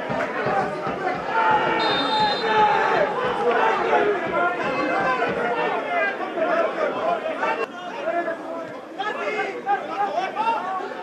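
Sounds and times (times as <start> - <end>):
many voices shouting: 0.0 - 8.3.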